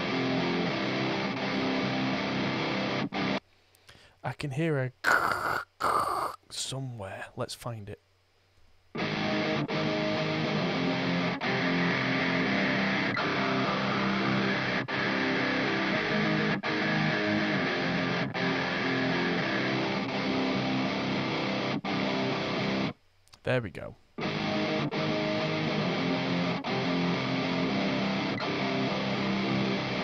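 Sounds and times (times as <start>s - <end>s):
distorted electric guitar riff: 0.0s - 3.4s, 5.0s - 6.4s, 8.9s - 23.0s, 24.2s - 30.0s.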